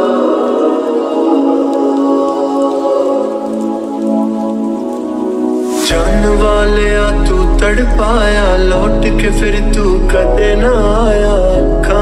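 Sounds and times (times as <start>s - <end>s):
slowed reverb-heavy song: 0.0s - 12.0s
steady rain: 0.0s - 12.0s
rising whoosh: 5.6s - 7.2s.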